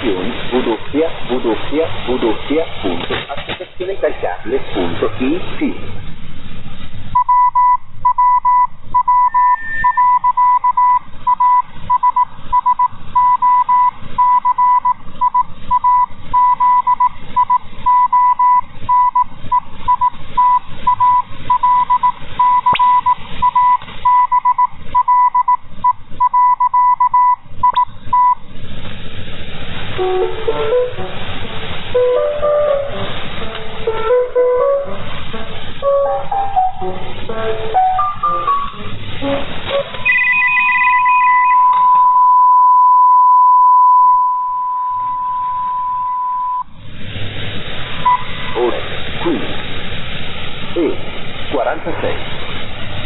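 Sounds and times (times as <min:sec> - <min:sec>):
radio static: 0:00.0 - 0:05.9, 0:39.7 - 0:42.2, 0:48.1 - 0:49.6, 0:50.7 - 0:52.3
morse code tone: 0:07.2 - 0:28.4, 0:35.8 - 0:46.7.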